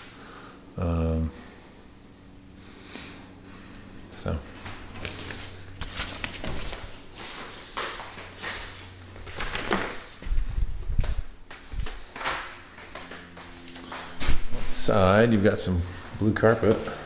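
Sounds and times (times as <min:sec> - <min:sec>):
footsteps indoors: 0:03.6 - 0:17.0.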